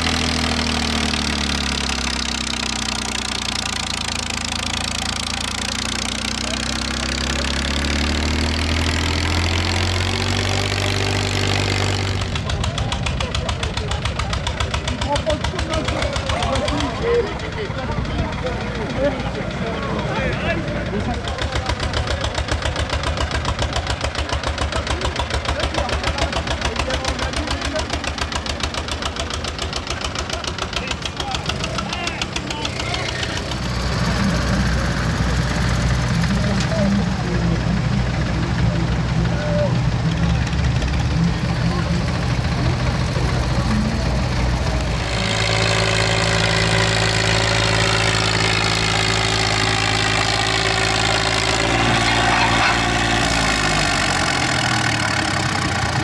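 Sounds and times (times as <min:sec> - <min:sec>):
heavier steady engine note: 0:00.0 - 0:56.0
tractor engine chugging: 0:00.0 - 0:56.0
tractor idling: 0:00.0 - 0:56.0.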